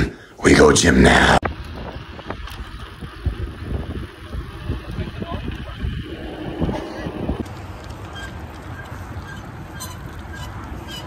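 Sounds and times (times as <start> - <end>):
wind buffeting microphone: 1.4 - 11.0.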